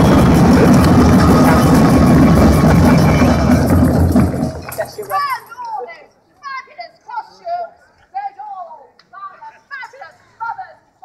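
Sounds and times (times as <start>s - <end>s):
drum music: 0.0s - 5.4s.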